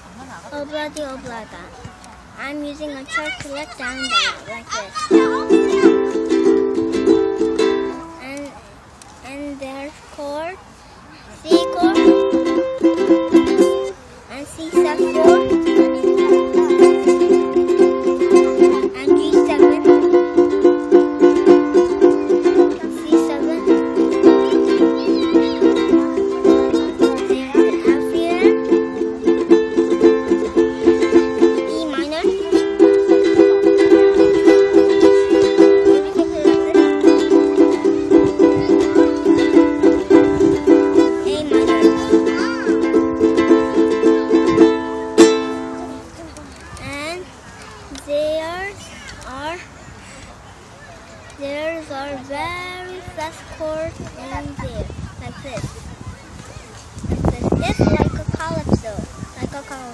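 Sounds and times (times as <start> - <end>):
ukulele strumming: 2.4 - 10.3, 11.4 - 47.2, 51.4 - 55.7.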